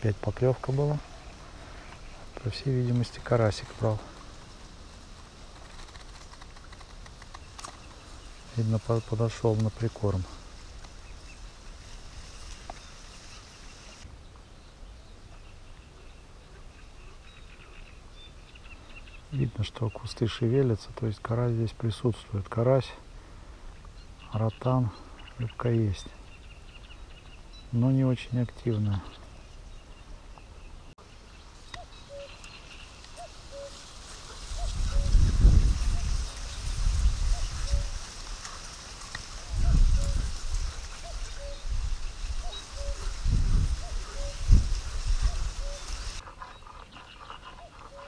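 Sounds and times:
insects buzzing: 0:00.7 - 0:14.1, 0:30.4 - 0:46.4
faint bird chirps: 0:23.7 - 0:38.0, 0:39.5 - 0:48.0.

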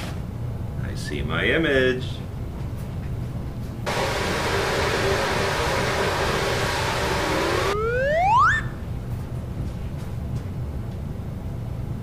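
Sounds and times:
rising whistle: 0:04.5 - 0:08.8.

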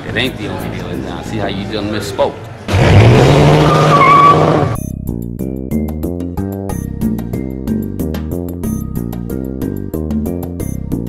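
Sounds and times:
car engine running hard: 0:02.7 - 0:04.8
tires spinning roar: 0:02.7 - 0:04.8
tire squeal: 0:03.2 - 0:04.8.

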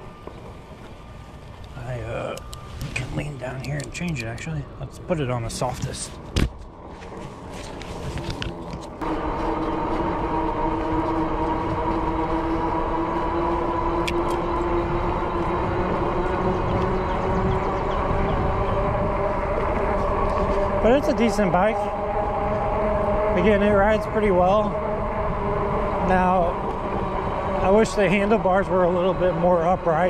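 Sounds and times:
tires and drive humming: 0:00.0 - 0:30.0
wind rumble on microphone: 0:00.0 - 0:30.0.

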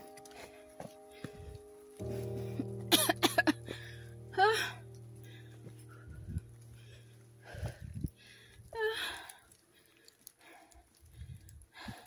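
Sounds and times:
footsteps on rocky trail: 0:00.0 - 0:02.8, 0:05.2 - 0:10.2.

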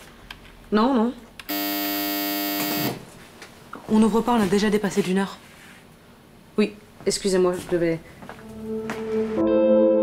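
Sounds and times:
electric door buzzer: 0:01.5 - 0:03.0.

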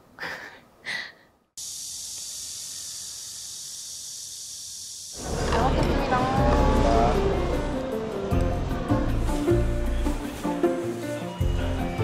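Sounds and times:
cicadas buzzing: 0:01.6 - 0:09.2.

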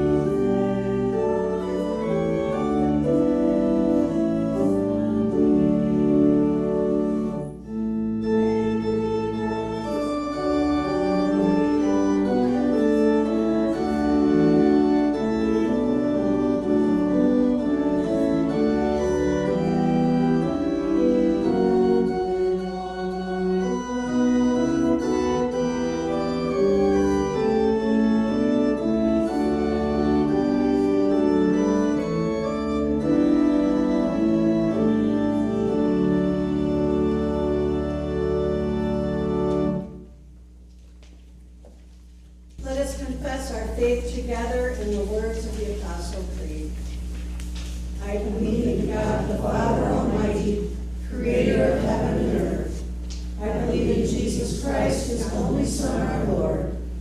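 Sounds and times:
organ playing held chords: 0:00.0 - 0:57.0.

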